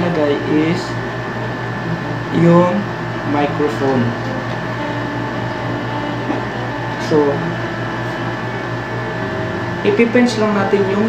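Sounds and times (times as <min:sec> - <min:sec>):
background hum and hiss: 0:00.0 - 0:11.0
faint high whine: 0:00.0 - 0:11.0.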